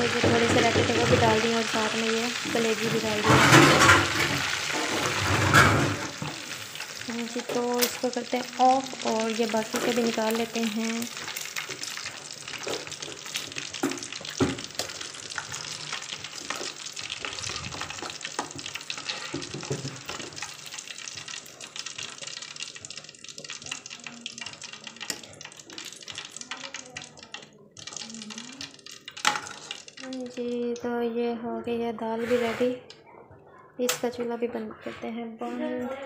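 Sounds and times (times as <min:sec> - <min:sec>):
hot oil sizzling: 0:00.0 - 0:30.9.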